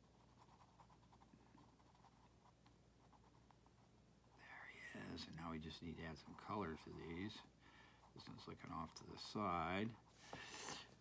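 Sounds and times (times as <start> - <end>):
pencil scratching on paper: 0.0 - 3.7, 6.4 - 7.4.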